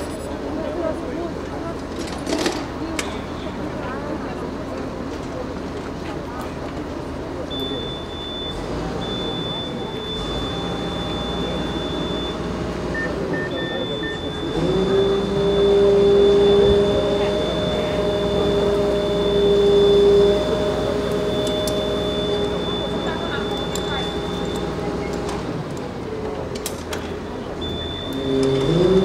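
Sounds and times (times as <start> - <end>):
truck engine and hydraulic whine: 4.4 - 29.0
short beeps: 7.5 - 25.4, 27.6 - 29.0.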